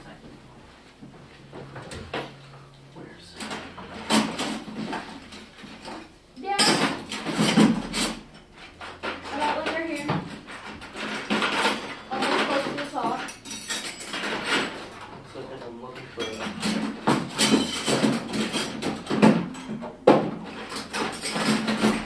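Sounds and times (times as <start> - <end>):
robot parts clattering in a bin: 9.0 - 14.9, 16.2 - 19.7, 20.5 - 22.0.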